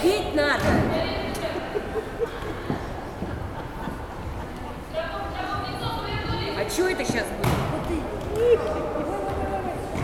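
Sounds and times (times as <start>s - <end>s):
echoing voices and shouts: 4.9s - 10.0s.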